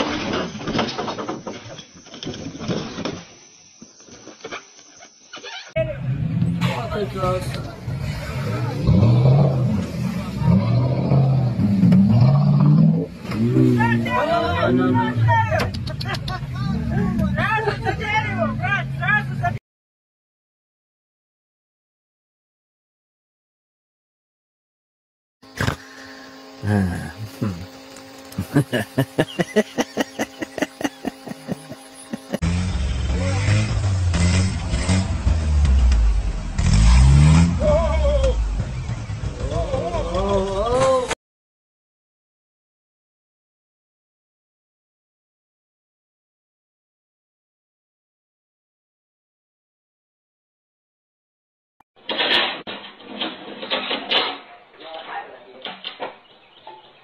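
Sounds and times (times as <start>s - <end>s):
engine revving: 5.8s - 15.4s, 26.6s - 40.6s
vehicle churning through mud and water: 6.0s - 14.0s, 28.4s - 39.6s.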